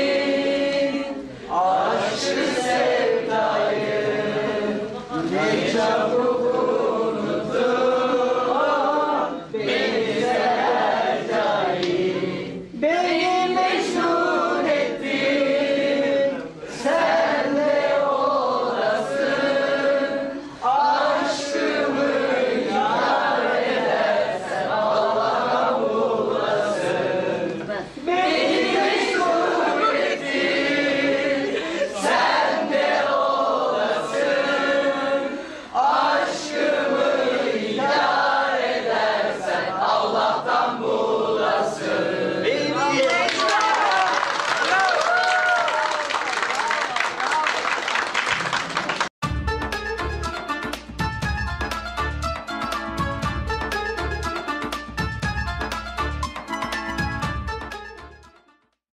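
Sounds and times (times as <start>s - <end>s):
voices singing a song: 0.0s - 43.2s
hand clapping: 11.8s - 12.0s.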